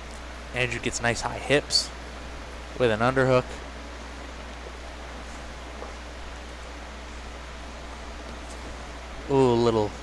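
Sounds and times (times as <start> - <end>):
low hum: 0.0 - 10.0
steady hiss: 0.0 - 10.0.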